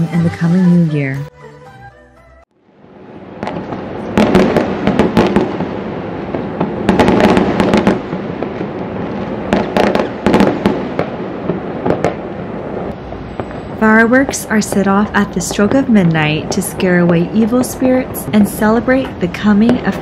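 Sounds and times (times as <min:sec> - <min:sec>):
fireworks crackling: 0:03.2 - 0:20.0
loud sharp firework bangs: 0:03.3 - 0:20.0.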